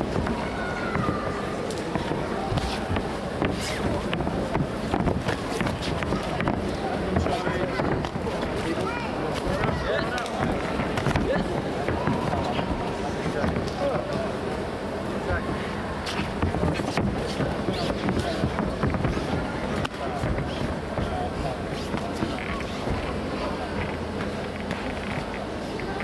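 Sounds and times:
gloves and feet knocking: 0.0 - 14.0, 16.1 - 25.4
murmur of voices: 0.0 - 26.0.

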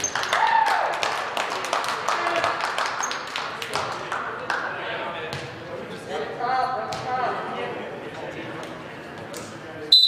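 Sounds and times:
loud shout: 0.2 - 1.1.

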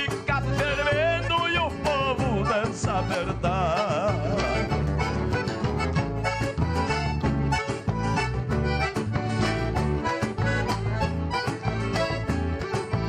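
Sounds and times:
accordion-led folk band: 0.0 - 13.0.

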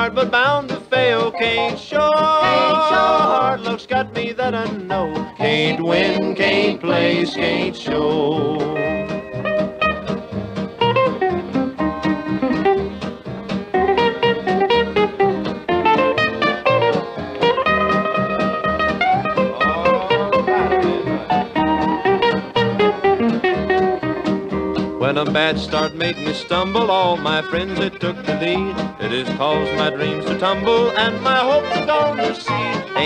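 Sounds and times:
bass: 0.0 - 33.0
plucked string lead: 0.0 - 33.0
rhythm guitar: 0.0 - 33.0.

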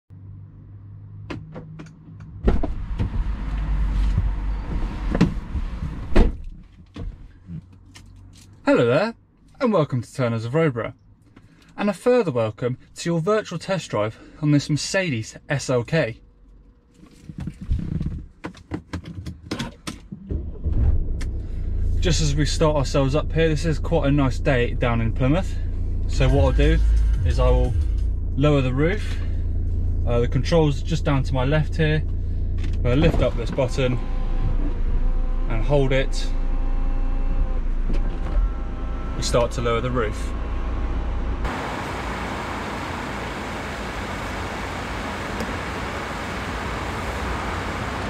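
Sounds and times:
loud low rumble with knocks: 1.2 - 7.2, 20.2 - 22.2, 26.1 - 29.9, 32.1 - 33.8
diesel engine starting and idling: 20.2 - 48.0.

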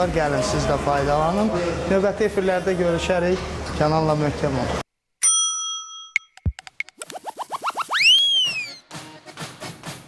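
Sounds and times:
bell-like ding: 5.2 - 6.4
quick rising chirps: 6.8 - 8.8
rising and falling whistle: 7.3 - 8.9.

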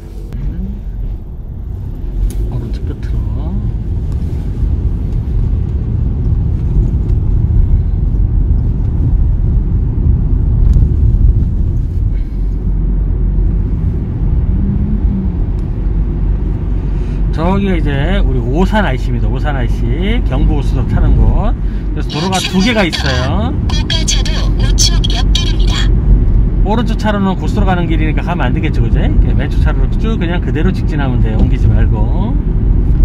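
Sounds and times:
car engine and tyre road noise: 0.0 - 33.0.

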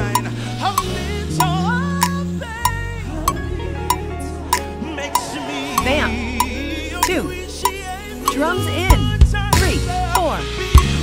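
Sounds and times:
gospel band music: 0.0 - 11.0
voices singing: 0.0 - 11.0.

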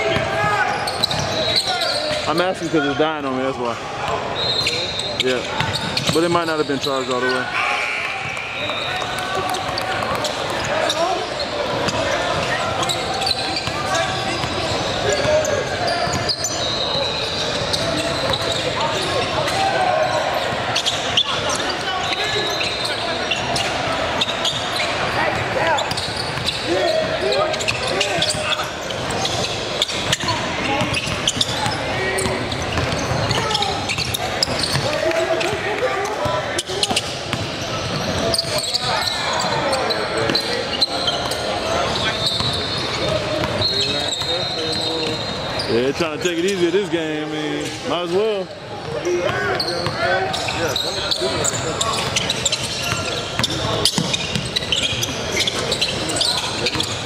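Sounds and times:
voices echoing in a hall: 0.0 - 57.0.

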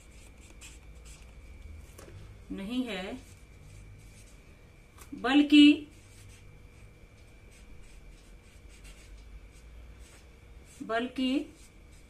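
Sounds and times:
felt-tip marker writing on paper: 0.0 - 1.2, 7.8 - 10.9.

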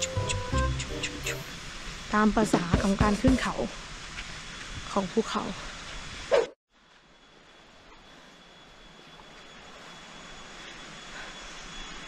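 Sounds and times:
rushing outdoor background noise: 0.0 - 12.0.

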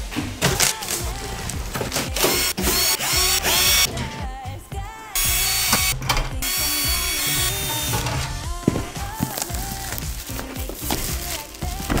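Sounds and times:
pop music with singing: 0.0 - 12.0
cordless drill running: 2.2 - 3.9, 5.2 - 8.2.

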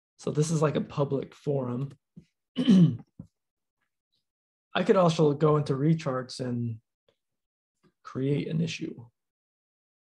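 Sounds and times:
man clearing throat: 2.6 - 3.1.

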